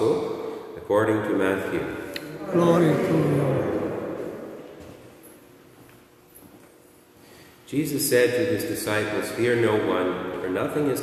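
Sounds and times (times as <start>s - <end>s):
room echo: 0.0s - 11.0s.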